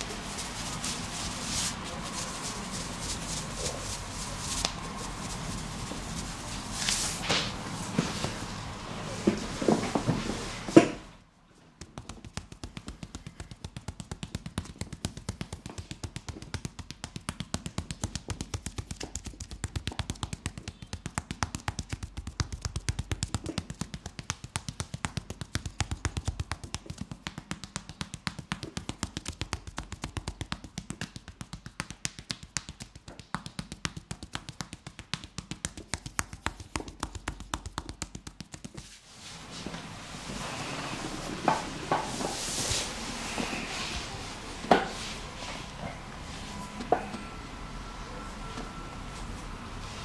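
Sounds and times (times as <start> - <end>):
hands slapping in massage: 11.8 - 39.0.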